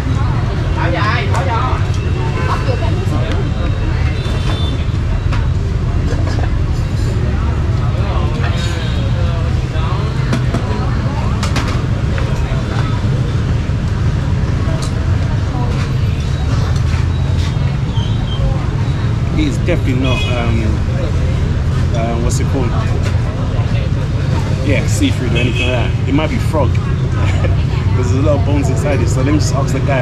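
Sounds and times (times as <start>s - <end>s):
people talking: 0.0s - 5.2s, 6.0s - 13.5s, 14.6s - 30.0s
traffic rumble: 0.0s - 30.0s.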